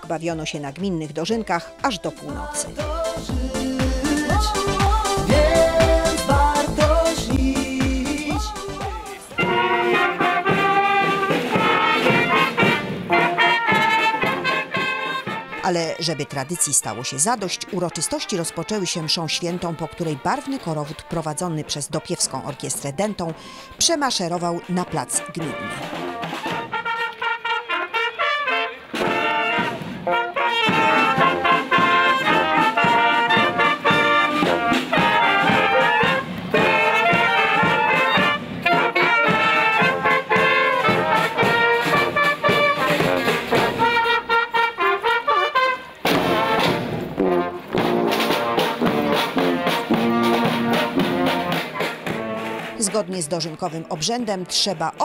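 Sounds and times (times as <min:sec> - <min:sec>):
brass band playing: 0:00.0 - 0:55.0.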